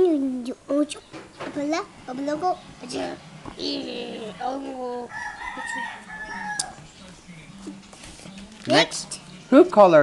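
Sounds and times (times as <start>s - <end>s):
rooster crowing: 4.9s - 6.9s.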